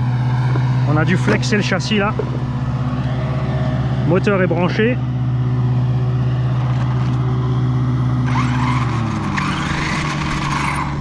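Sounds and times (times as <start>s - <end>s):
steady low hum: 0.0s - 8.5s
electric motor and gears whining: 0.0s - 11.0s.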